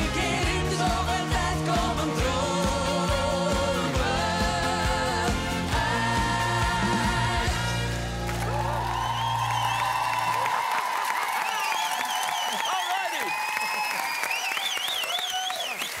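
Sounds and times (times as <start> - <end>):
audience applauding and cheering: 4.0 - 16.0.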